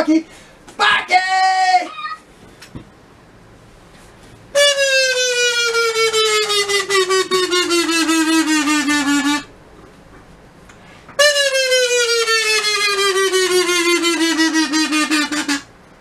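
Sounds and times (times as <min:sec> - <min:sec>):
buzzy horn note falling in pitch: 0:04.6 - 0:09.5, 0:11.2 - 0:15.7.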